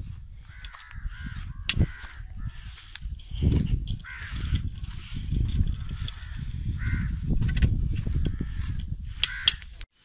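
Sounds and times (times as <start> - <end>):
wind buffeting microphone: 0.0 - 9.9
crows cawing: 0.4 - 3.0, 3.9 - 4.9, 5.5 - 7.4, 8.0 - 9.8.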